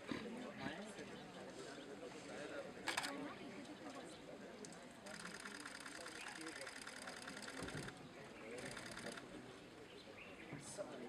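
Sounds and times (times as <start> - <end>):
murmured human voices: 0.0 - 11.0.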